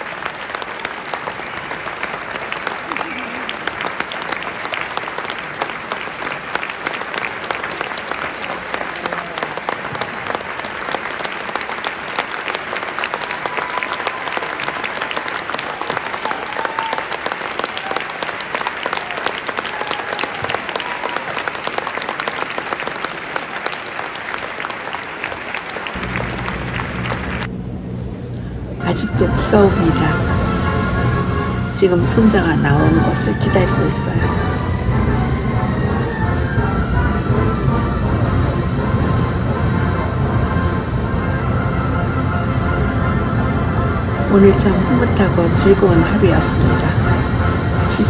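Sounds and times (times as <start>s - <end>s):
audience applauding: 0.0s - 27.6s, 28.8s - 48.0s
low outdoor rumble: 26.0s - 48.0s.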